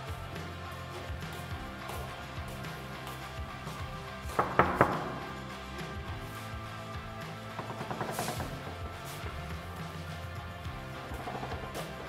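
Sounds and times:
background music: 0.0 - 12.0
knocks on wooden door: 4.4 - 5.3.

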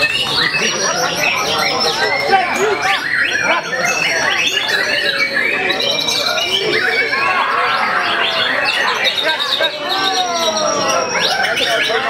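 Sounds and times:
many birds singing: 0.0 - 12.0.

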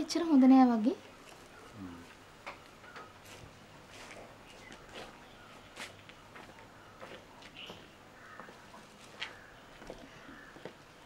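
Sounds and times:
faint footsteps on pavement: 0.9 - 11.0.

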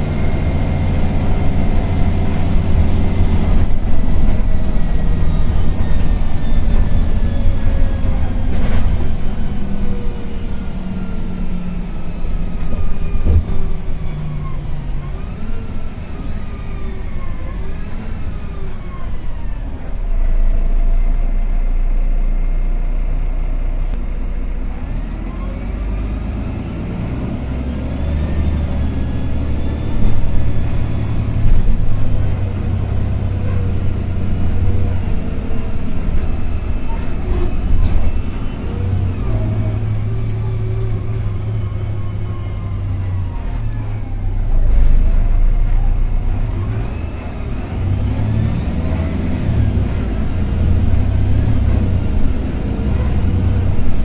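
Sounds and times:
bus diesel engine running: 0.0 - 54.0.

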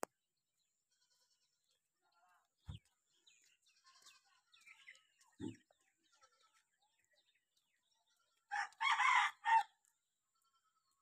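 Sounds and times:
rooster crowing: 8.5 - 9.7.

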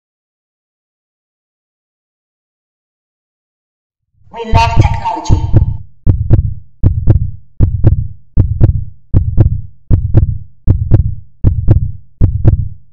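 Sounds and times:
synthesized heartbeat thumps: 4.5 - 12.9.

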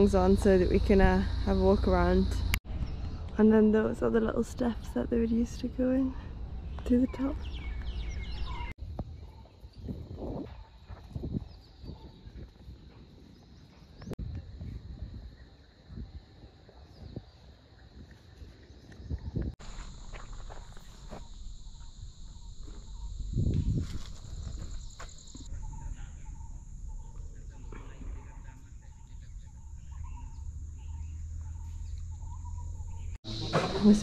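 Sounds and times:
insects droning: 0.0 - 34.0
wind gusts on microphone: 6.3 - 19.6, 23.0 - 25.8.

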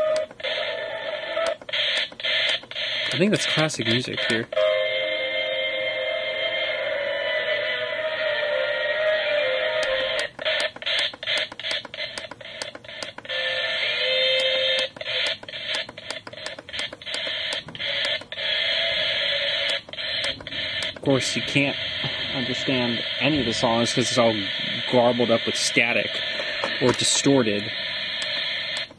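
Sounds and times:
classical music on small radio: 0.0 - 3.0, 4.2 - 21.0
radio static: 0.4 - 4.5, 13.3 - 28.9.

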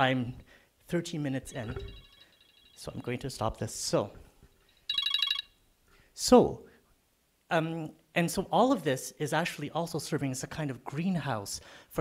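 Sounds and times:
electronic ringing tone: 1.6 - 2.9, 4.7 - 5.6.

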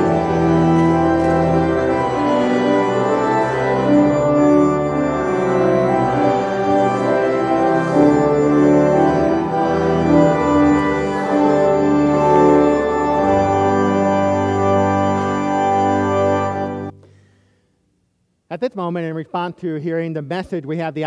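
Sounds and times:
church organ chords: 0.0 - 17.0.

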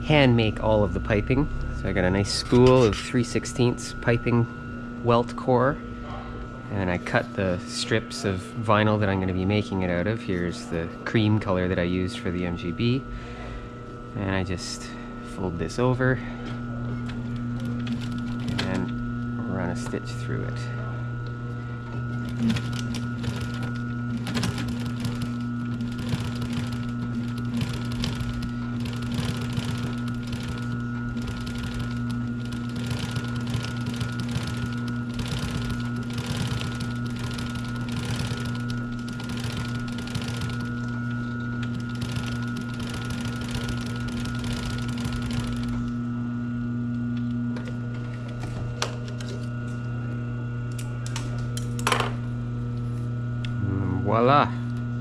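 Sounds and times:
sewing machine motor hum: 0.0 - 4.3, 15.2 - 46.2
sewing machine stitching clatter: 22.3 - 40.7, 41.6 - 45.8.

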